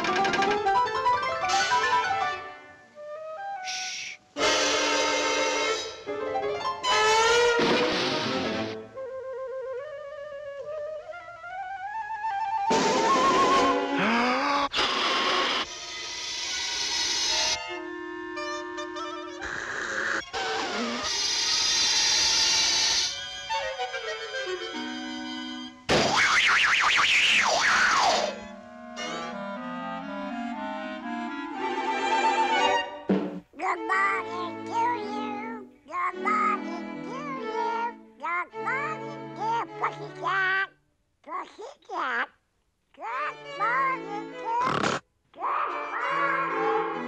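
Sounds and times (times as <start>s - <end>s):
cartoon orchestral music: 0.0s - 8.8s, 11.8s - 14.4s, 17.4s - 19.5s, 27.7s - 40.3s, 45.6s - 47.0s.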